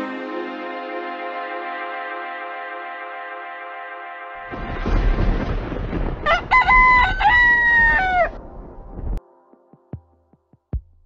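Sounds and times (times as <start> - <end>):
low rumble: 4.4 - 9.2.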